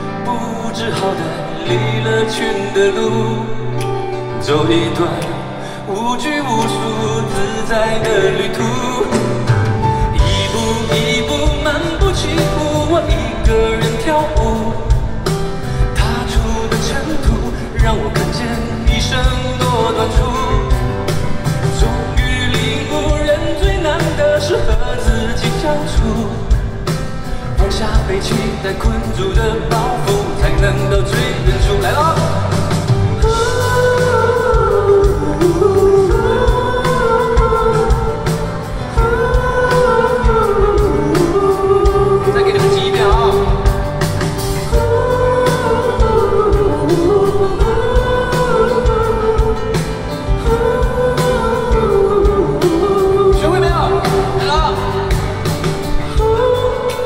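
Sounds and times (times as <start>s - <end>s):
man singing pop-rock: 0.0s - 57.0s
band with steady beat: 6.6s - 57.0s.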